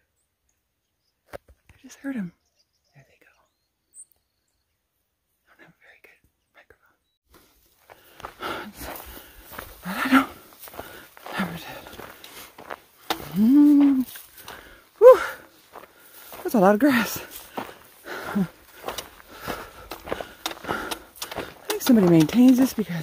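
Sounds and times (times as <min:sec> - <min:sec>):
footsteps through dry grass: 0:07.3 - 0:23.0
breathy vocal sounds: 0:08.1 - 0:12.2, 0:13.0 - 0:16.2, 0:16.8 - 0:23.0.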